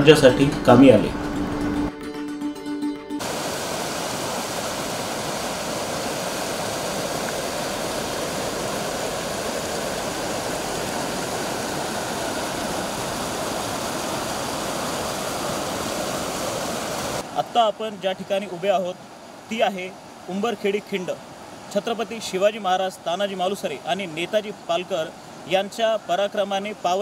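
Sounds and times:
river rushing over rocks: 3.2s - 27.0s.

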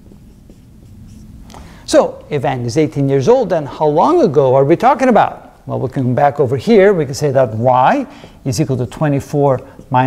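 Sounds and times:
marker writing on whiteboard: 0.0s - 1.6s.

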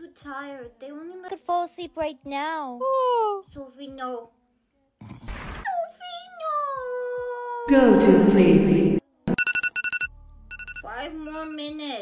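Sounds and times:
electronic alarm beeping: 7.8s - 11.6s.

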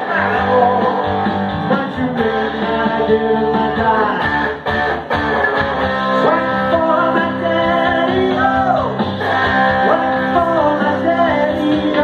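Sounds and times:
electric guitar playing: 0.0s - 12.0s.

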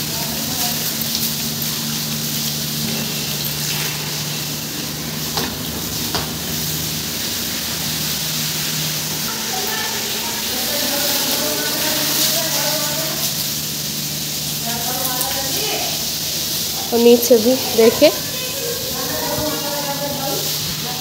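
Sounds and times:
broom scrubbing floor: 0.0s - 21.0s
water pouring from hose: 0.0s - 21.0s.

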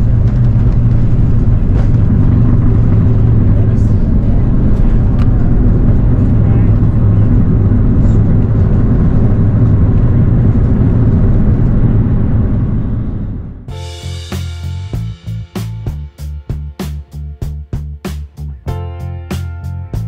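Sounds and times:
aircraft engines low rumble: 0.0s - 20.0s.

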